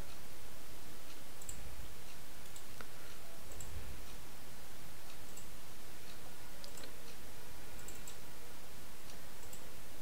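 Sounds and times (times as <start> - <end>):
computer mouse clicks: 1.1 - 4.2, 5.1 - 5.5, 6.1 - 7.2, 7.8 - 8.3, 9.0 - 9.7.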